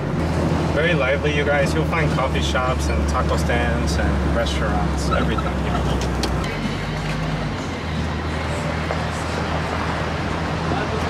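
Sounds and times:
car engine: 0.0 - 11.0
road noise: 0.0 - 11.0.

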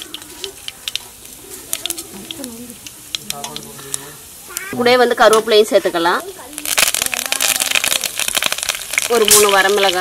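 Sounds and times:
seeds sizzling in oil: 0.0 - 10.0.

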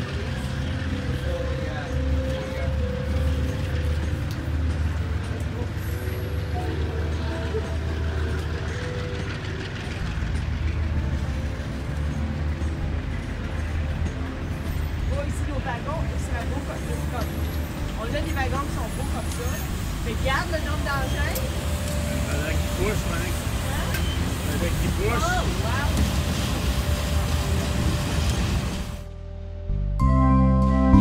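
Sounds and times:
carriages on rails: 0.0 - 29.1
train rumbling past: 0.0 - 29.4.

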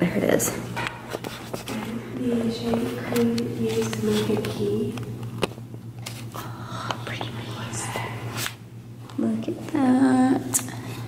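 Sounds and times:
low steady hum: 0.0 - 11.0
person whispering: 6.5 - 8.4.

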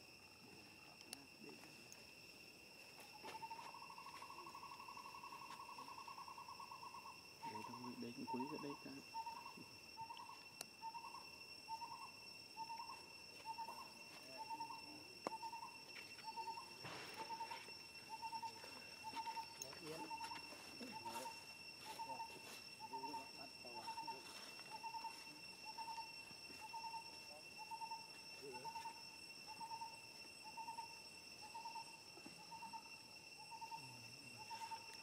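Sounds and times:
high-pitched insect drone: 0.0 - 35.0.

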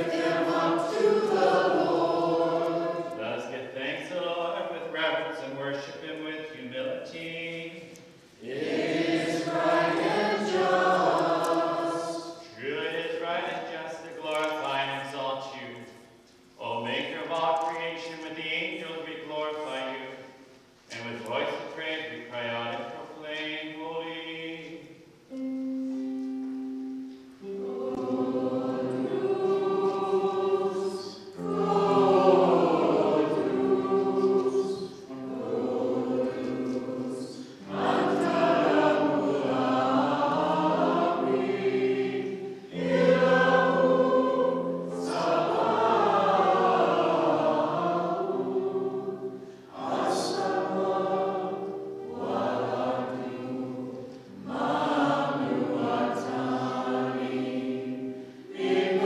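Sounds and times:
group singing a hymn: 0.0 - 15.9, 16.7 - 26.0, 26.9 - 59.0.

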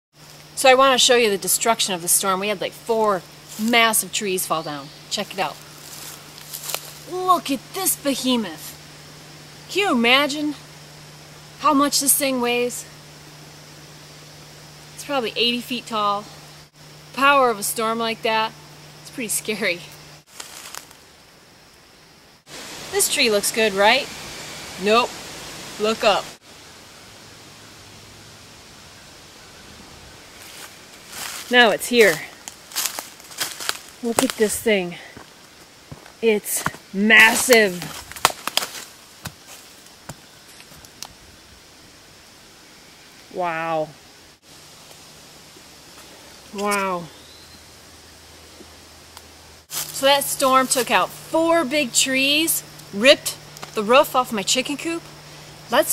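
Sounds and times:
faint steady hiss: 0.1 - 55.9.

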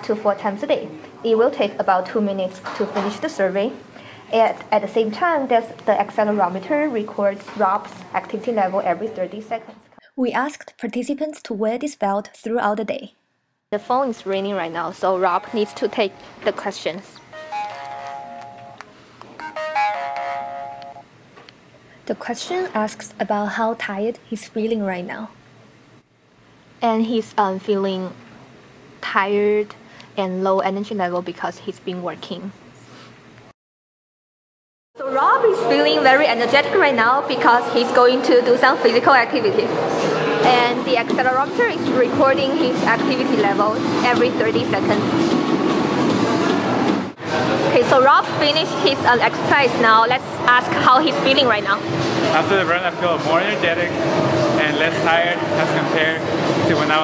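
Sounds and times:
phone ringtone melody: 17.4 - 18.8, 19.4 - 21.0.

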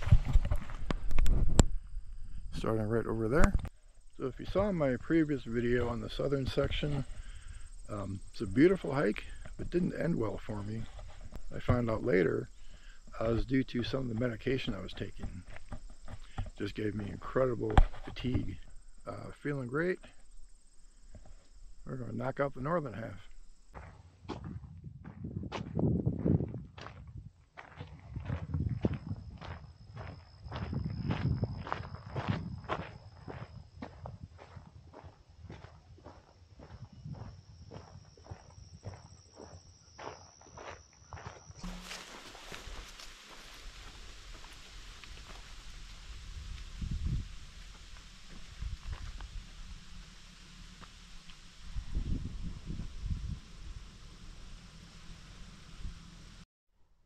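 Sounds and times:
footsteps on dirt path: 0.0 - 1.8, 8.7 - 19.0, 20.0 - 55.5
steady hiss: 0.0 - 23.8, 41.6 - 56.4
footsteps on paved road: 9.4 - 18.6, 23.0 - 45.9.

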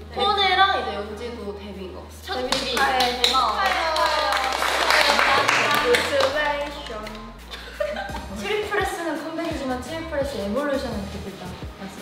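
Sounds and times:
young women speaking: 0.0 - 7.5, 8.2 - 12.0
people clapping: 2.4 - 7.5.

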